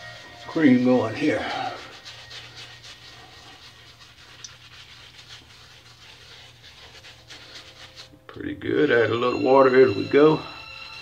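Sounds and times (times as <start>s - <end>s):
shaving brush scrubbing: 0.0s - 11.0s.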